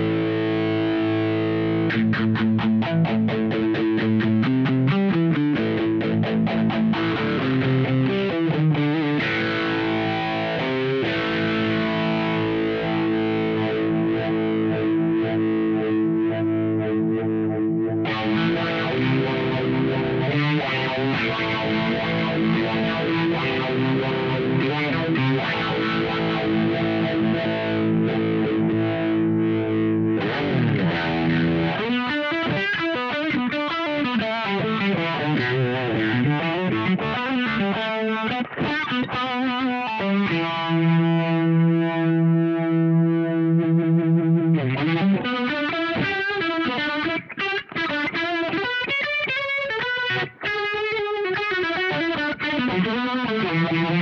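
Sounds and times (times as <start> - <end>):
electric guitar with phaser: 0.0 - 54.0.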